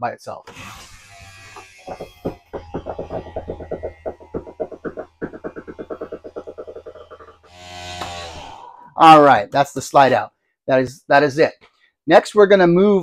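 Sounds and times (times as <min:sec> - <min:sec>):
smooth motor whir: 0:00.5 - 0:08.7.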